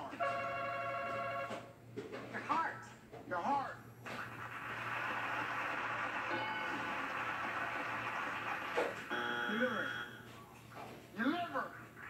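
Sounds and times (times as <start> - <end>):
audience laughing and applauding: 4.2 - 9.1.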